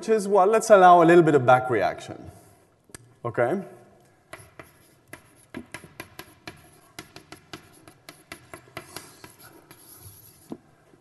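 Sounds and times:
chalk writing on blackboard: 4.3s - 10.7s.

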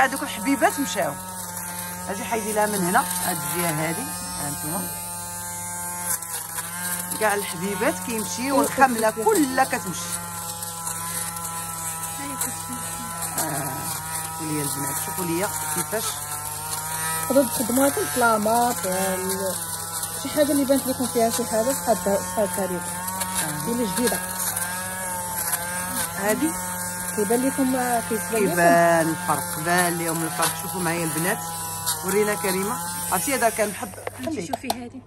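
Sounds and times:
lint remover buzzing: 0.0s - 34.9s.

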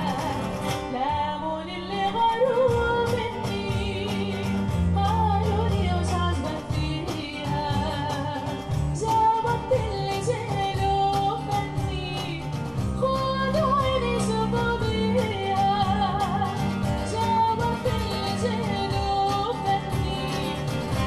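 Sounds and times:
cajon beat: 0.0s - 21.0s.

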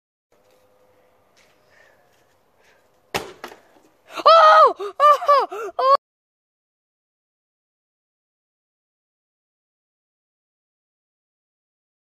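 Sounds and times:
boys yelling excitedly: 4.2s - 6.0s.

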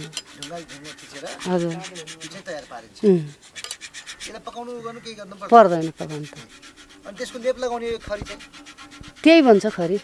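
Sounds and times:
fast pulsing rasping noise: 0.0s - 10.0s
woman speaking: 1.5s - 1.8s, 9.2s - 10.0s.

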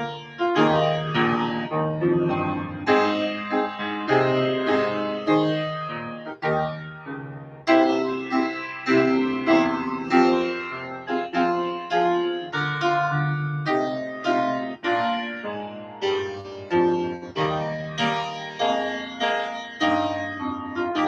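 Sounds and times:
piano playing slow chords: 0.0s - 21.0s.

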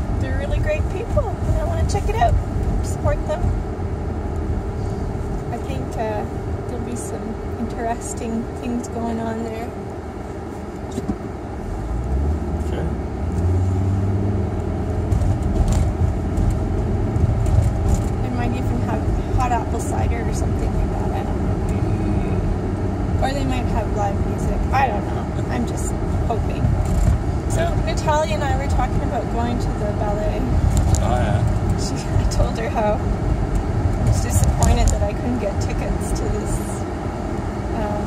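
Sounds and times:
car engine and road noise: 0.0s - 38.0s.

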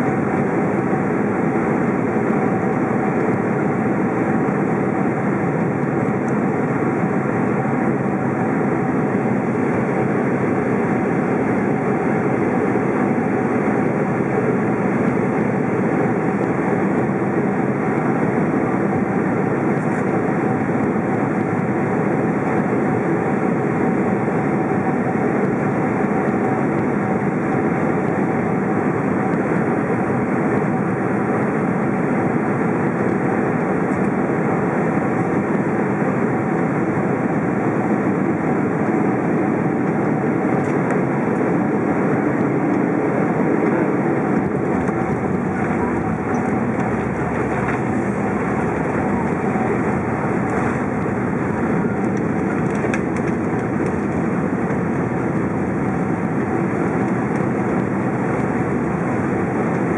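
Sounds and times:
jet engines in aircraft cabin: 0.0s - 59.9s
rushing airflow: 40.4s - 59.9s.

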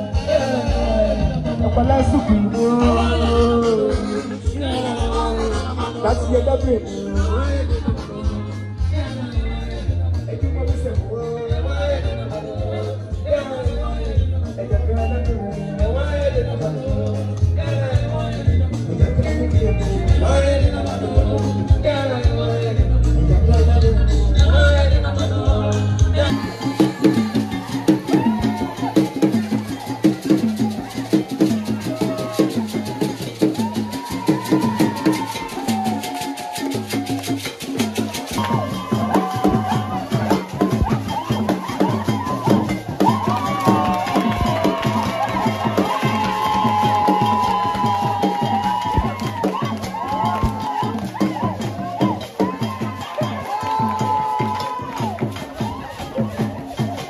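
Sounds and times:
group singing: 0.0s - 53.6s
drum ensemble fast rhythm: 0.0s - 57.0s.

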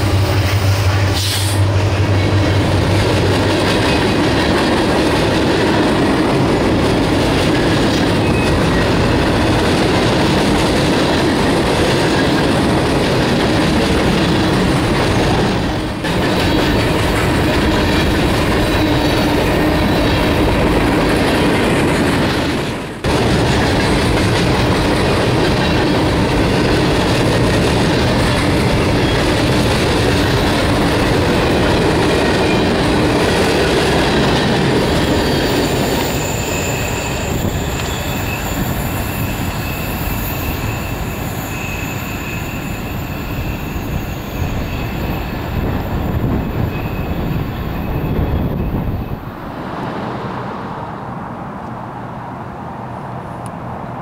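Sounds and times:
train wheels rumbling on rail: 0.0s - 54.0s
high-pitched wheel squeal: 8.2s - 9.1s, 34.2s - 49.4s.

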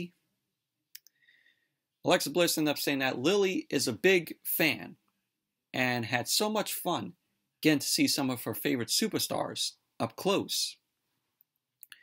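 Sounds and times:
faint breath: 1.1s - 1.9s
person speaking: 2.0s - 5.1s, 5.7s - 10.9s.

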